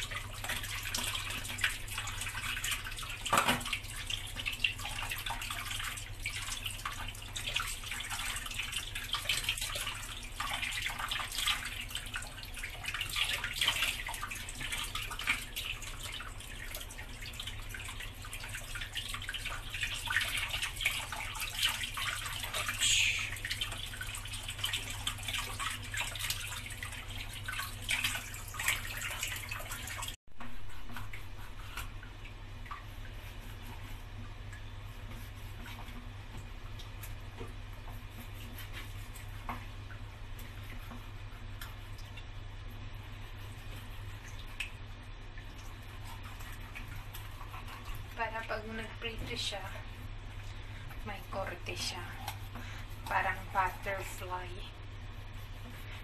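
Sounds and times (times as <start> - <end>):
tap water splattering in sink: 3.1 - 4.5.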